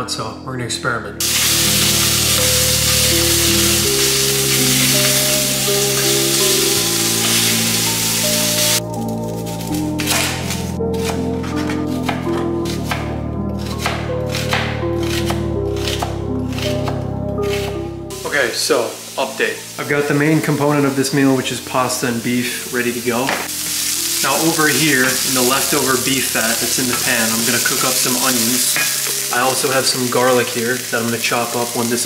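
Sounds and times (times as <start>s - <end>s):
background music with slow chords: 0.0s - 32.0s
meat sizzling in a frying pan: 1.2s - 8.8s, 18.1s - 32.0s
knife chopping onion on board: 13.7s - 17.7s.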